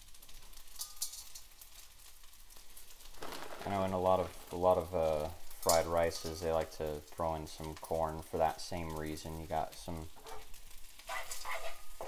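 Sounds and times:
rice sizzling in a frying pan: 0:00.0 - 0:12.0
wooden spoon scraping a pan: 0:10.1 - 0:12.0.

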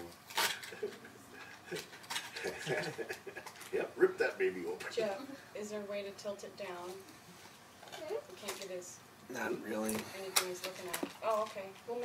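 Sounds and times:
wrapping paper ripping: 0:00.2 - 0:03.8.

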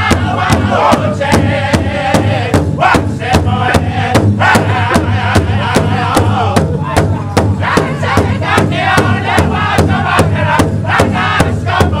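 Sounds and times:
large hide drum beating: 0:00.0 - 0:12.0
men singing in unison: 0:00.0 - 0:12.0.

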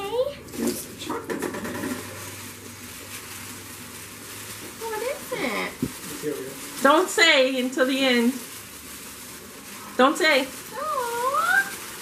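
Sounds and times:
tissue paper rustling: 0:01.9 - 0:12.0.

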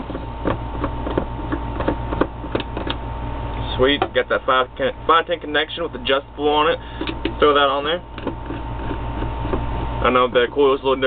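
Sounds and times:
steady low hum: 0:00.0 - 0:11.0
small clicks and taps: 0:00.1 - 0:03.0, 0:08.2 - 0:09.6.

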